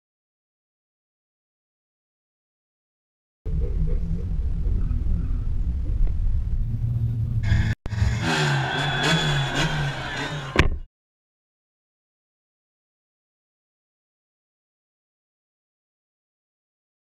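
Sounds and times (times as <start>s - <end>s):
car engine revving: 6.3s - 10.8s.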